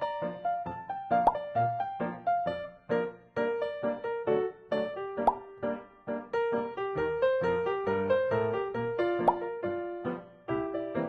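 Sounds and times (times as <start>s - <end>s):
light keyboard music: 0.0s - 11.0s
short rising plop blip: 5.2s - 5.4s.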